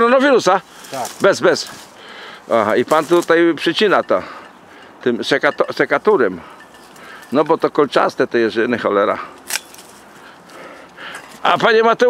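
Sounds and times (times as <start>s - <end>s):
pruning shears snipping stem: 9.4s - 10.0s.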